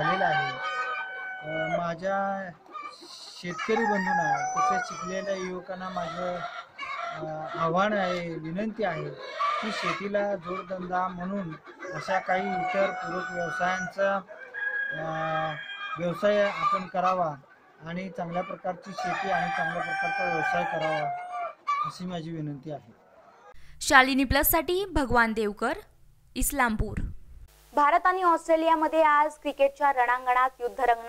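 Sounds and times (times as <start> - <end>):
rooster crowing: 0.0 - 2.0, 3.4 - 7.3, 11.8 - 16.7, 18.8 - 21.6.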